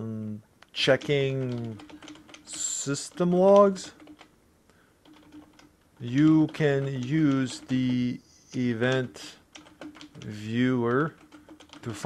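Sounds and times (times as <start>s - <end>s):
faint keyboard typing: 0.6s - 12.0s.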